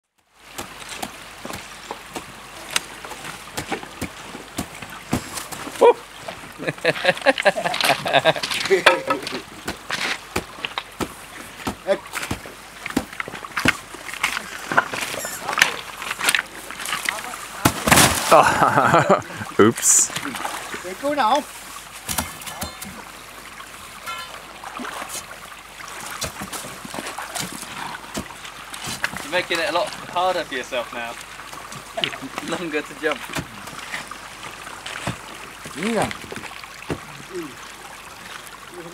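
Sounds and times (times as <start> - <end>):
water lapping and trickling: 0.0 - 38.9
small splashes: 0.3 - 38.9
sharp knocks: 8.8 - 13.8.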